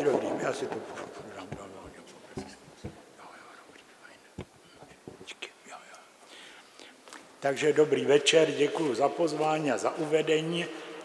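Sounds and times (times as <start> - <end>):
faint whispered voices: 0.4 - 6.2.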